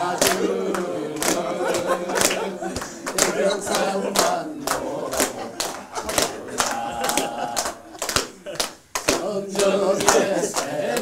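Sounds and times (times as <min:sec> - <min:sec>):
group clapping in time: 0:00.0 - 0:11.0.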